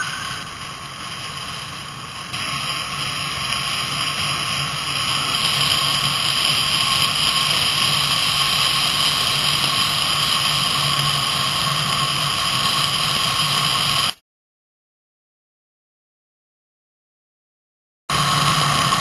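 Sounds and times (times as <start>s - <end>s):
wheels rolling on asphalt: 0.0s - 14.2s, 18.1s - 19.0s.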